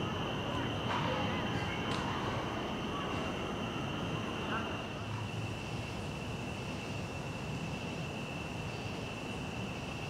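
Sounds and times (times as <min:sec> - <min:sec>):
distant city traffic rumble: 0:00.0 - 0:10.0
insect chorus drone: 0:00.0 - 0:10.0.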